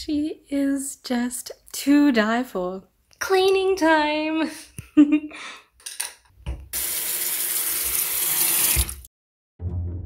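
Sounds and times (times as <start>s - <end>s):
tap water pouring into sink: 6.8s - 9.1s
music: 9.6s - 10.0s.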